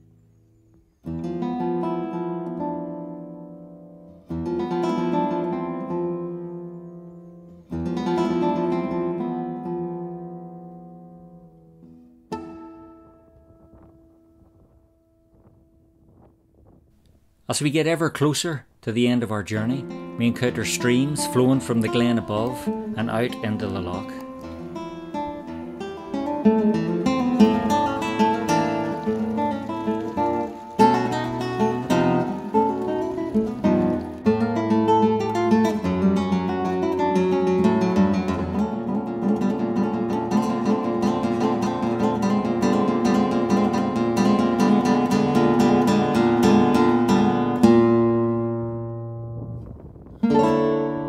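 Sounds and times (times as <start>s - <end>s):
solo acoustic guitar: 0.0s - 51.0s.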